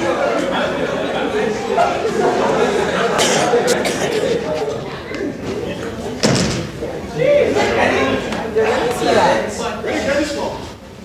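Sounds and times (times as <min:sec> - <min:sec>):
faint talk: 0:00.0 - 0:10.8
loud thump echoing in a hall: 0:06.2 - 0:07.0.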